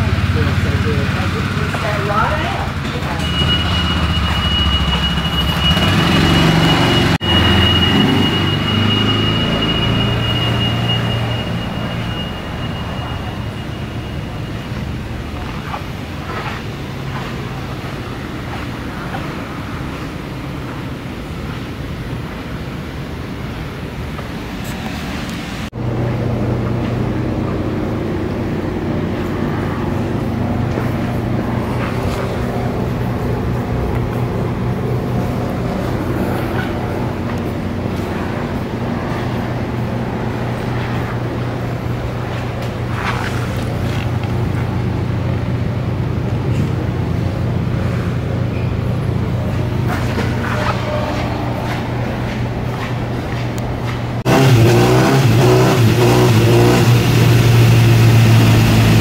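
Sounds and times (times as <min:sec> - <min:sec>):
engine running steadily: 0:00.0 - 0:59.0.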